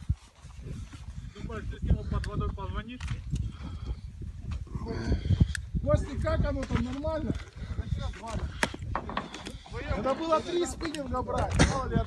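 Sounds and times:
men talking indistinctly: 1.3 - 3.3, 4.7 - 12.0.

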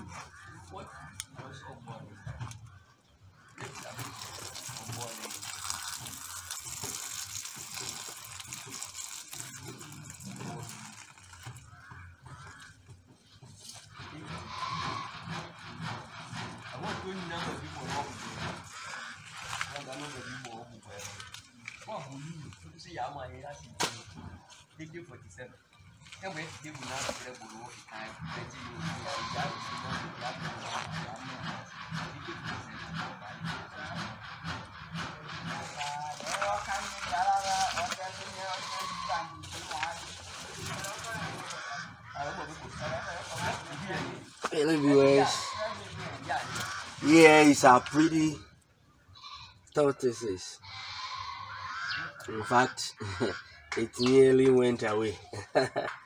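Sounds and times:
people talking indistinctly: 0.0 - 7.1, 7.9 - 55.9.

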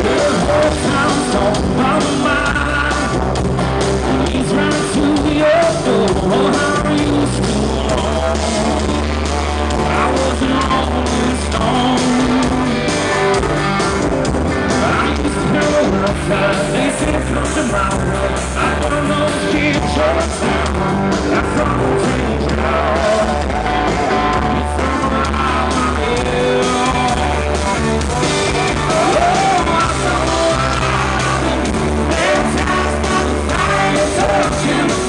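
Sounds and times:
person singing lead vocals: 0.0 - 13.4, 14.5 - 35.0
country rock band playing: 0.0 - 35.0.

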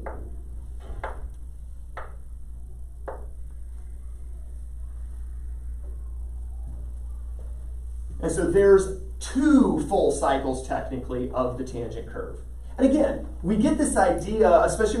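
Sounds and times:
steady low hum: 0.0 - 15.0
chalk tapping on blackboard: 1.9 - 2.2, 3.0 - 3.4.

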